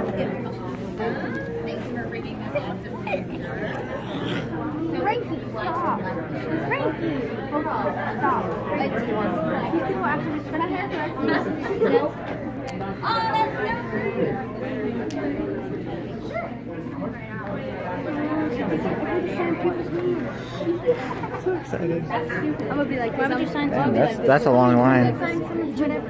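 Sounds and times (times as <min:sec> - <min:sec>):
indistinct chatter: 0:00.0 - 0:26.0.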